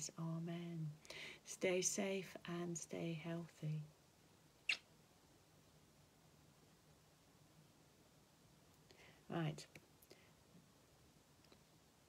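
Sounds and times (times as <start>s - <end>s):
squeaky lip smack: 4.7s - 4.9s.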